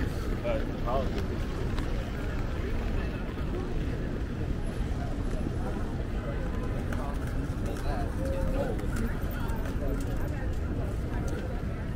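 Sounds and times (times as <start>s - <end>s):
faint voices: 0.0s - 11.9s
traffic rumble: 0.0s - 11.9s.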